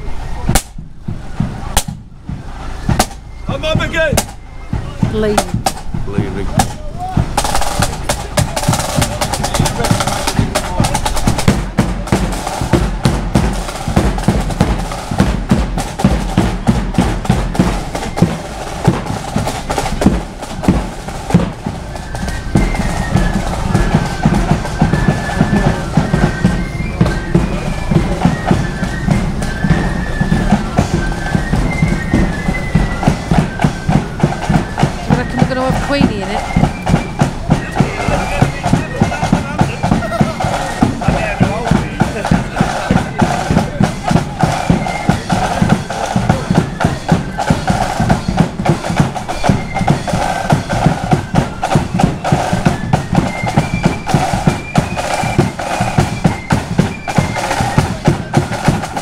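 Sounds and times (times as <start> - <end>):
bass drum and snare beats: 0.0 - 59.0
marching band playing: 0.0 - 59.0.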